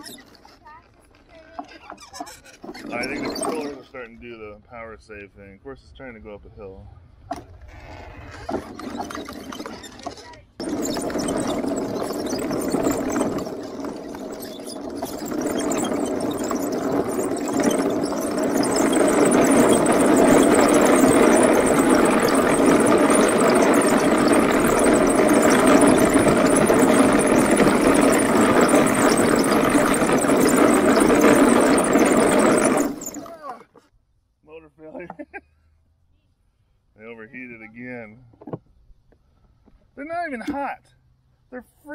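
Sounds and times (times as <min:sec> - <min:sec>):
wooden tracks running: 0:00.0 - 0:04.4, 0:07.3 - 0:33.8
electric motors driving: 0:07.6 - 0:33.6.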